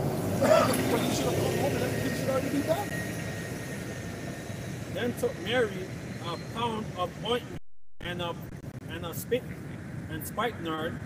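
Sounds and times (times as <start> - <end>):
outdoor background rumble: 0.0 - 11.0.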